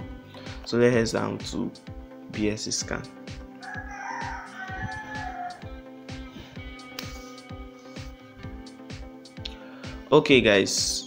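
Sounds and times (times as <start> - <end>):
background music with steady beat: 0.0 - 11.0
rooster crowing: 3.6 - 5.7.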